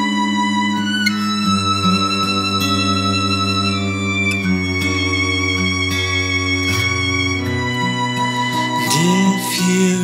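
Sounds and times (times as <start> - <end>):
bowed strings with cello: 0.0 - 10.0.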